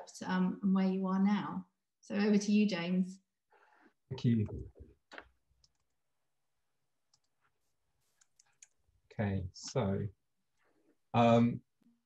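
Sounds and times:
computer mouse clicks: 0:05.1 - 0:06.0, 0:08.2 - 0:08.8.

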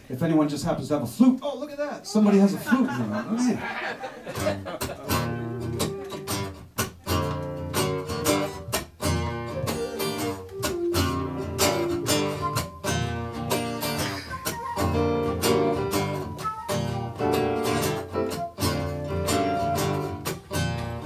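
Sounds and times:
strummed acoustic guitar: 0:04.3 - 0:21.0
flute: 0:09.0 - 0:13.3, 0:14.0 - 0:20.2.

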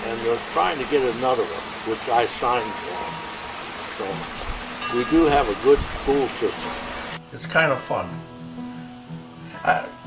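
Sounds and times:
background hiss: 0:00.0 - 0:10.0
faint music: 0:00.0 - 0:10.0
man speaking: 0:04.0 - 0:04.2, 0:04.9 - 0:06.6.

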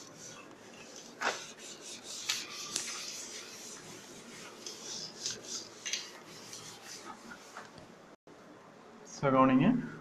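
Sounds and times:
duster rubbing blackboard: 0:00.0 - 0:07.8.

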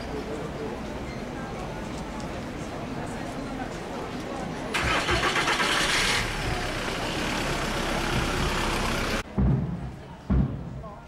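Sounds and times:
car engine starting and running: 0:04.7 - 0:09.2.

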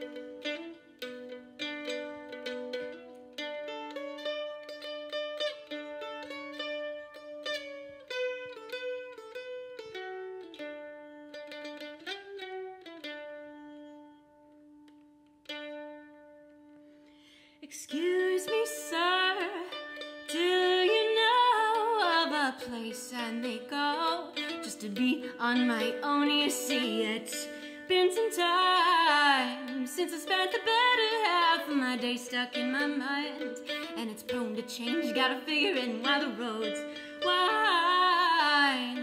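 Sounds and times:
mandolin melody: 0:00.0 - 0:39.0
woman singing: 0:17.6 - 0:39.0.

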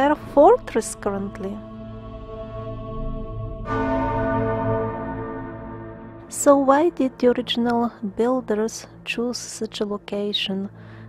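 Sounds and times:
ambient background music: 0:00.0 - 0:11.0
bell-like tone ringing: 0:03.6 - 0:07.2.

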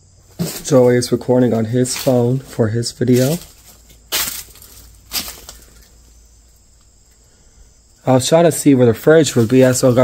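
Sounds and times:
footsteps on dry leaves: 0:00.3 - 0:05.9, 0:09.2 - 0:10.0.

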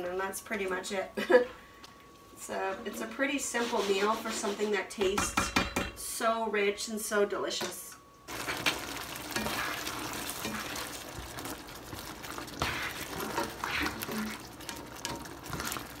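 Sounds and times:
spatula scraping a pan: 0:03.5 - 0:04.8, 0:08.4 - 0:11.0, 0:12.5 - 0:16.0
gravy bubbling in a frying pan: 0:08.3 - 0:16.0.

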